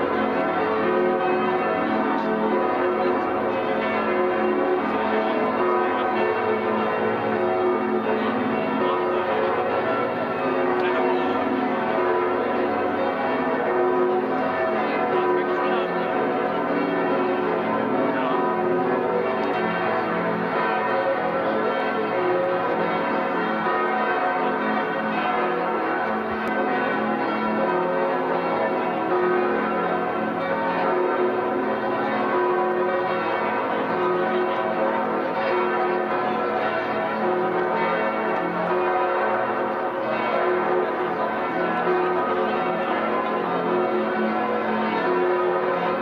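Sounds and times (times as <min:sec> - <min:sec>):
large church bells pealing: 0:00.0 - 0:46.0.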